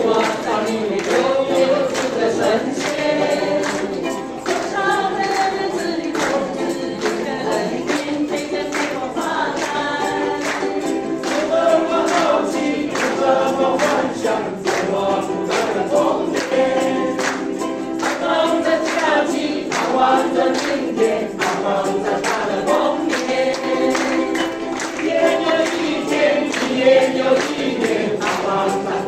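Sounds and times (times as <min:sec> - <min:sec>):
group singing together: 0:00.0 - 0:29.0
strummed ukuleles: 0:00.0 - 0:29.0.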